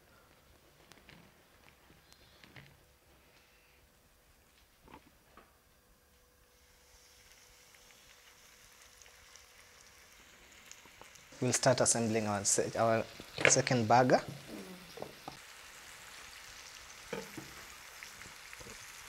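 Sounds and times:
chicken frying in oil: 0:06.5 - 0:19.0.

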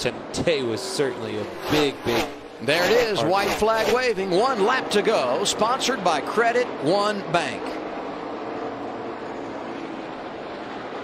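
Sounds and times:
race car engines at full throttle: 0:00.0 - 0:11.0.

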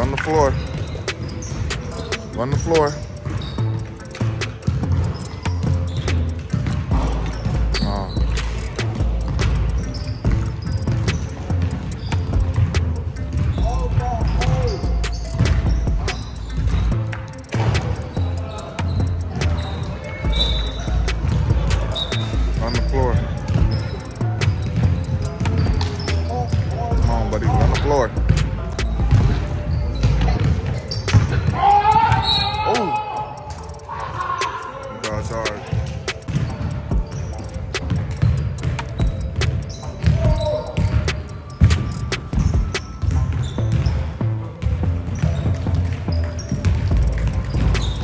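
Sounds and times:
voices calling out: 0:00.0 - 0:42.9
basketball bouncing on wood floor: 0:00.1 - 0:32.9, 0:35.3 - 0:48.0.

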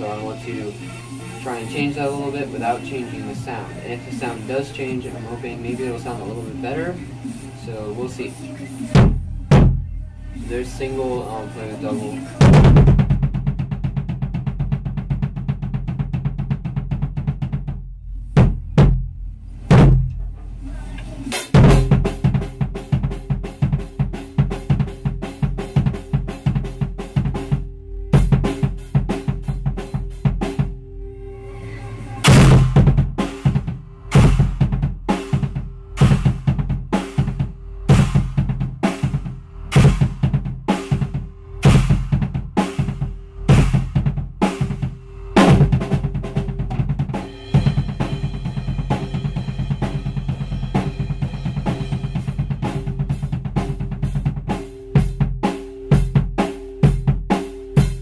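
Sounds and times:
drum kit played hard and fast: 0:00.0 - 0:07.0, 0:07.6 - 0:19.1, 0:19.7 - 0:20.2, 0:21.3 - 0:30.8, 0:32.2 - 0:58.0
muffled bass drum strokes: 0:08.8 - 0:57.3.

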